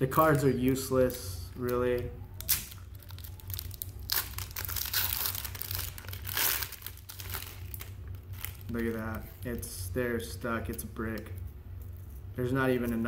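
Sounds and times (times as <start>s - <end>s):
wrapper tearing and crinkling: 1.7s - 9.5s.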